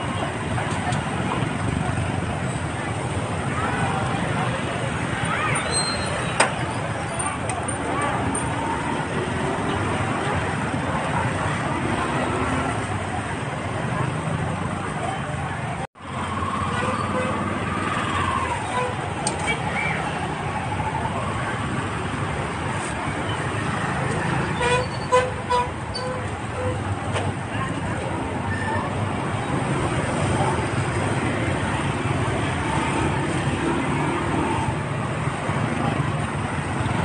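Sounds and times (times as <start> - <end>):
people chattering: 0.0 - 37.0
traffic noise: 0.0 - 37.0.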